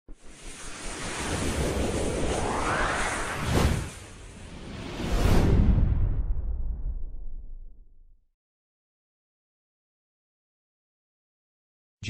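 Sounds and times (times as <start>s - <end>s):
whoosh with low rumble: 0.1s - 8.2s.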